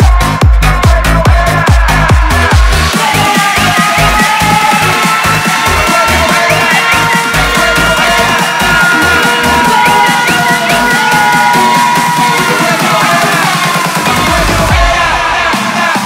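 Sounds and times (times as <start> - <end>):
electronic dance music: 0.0 - 16.0
pounding kick drum: 0.0 - 16.0.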